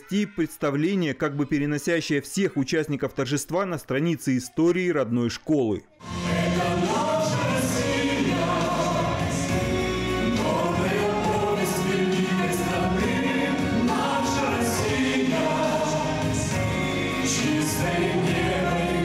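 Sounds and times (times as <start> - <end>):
man and woman singing pop song: 6.0 - 19.0
musical accompaniment: 6.0 - 19.0.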